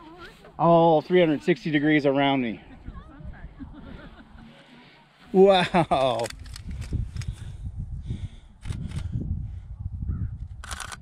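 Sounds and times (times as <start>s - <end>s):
wind rumble on microphone: 6.3s - 11.0s
camera shutter clicking rapidly: 10.6s - 11.0s.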